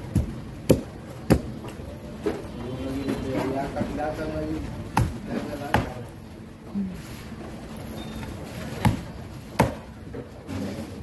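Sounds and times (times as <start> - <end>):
low background noise: 0.0 - 11.0.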